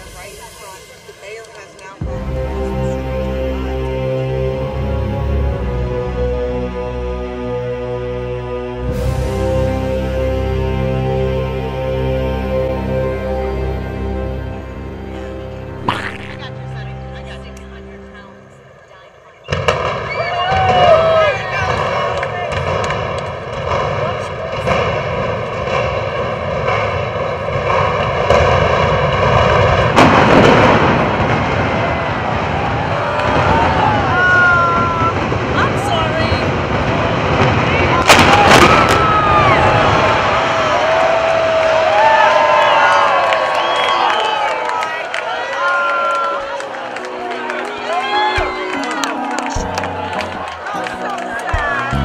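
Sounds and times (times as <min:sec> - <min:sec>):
crowd chattering and calling out: 0:13.6 - 0:28.0, 0:44.6 - 0:52.0
sharp cracks of demolition charges: 0:21.7 - 0:34.2.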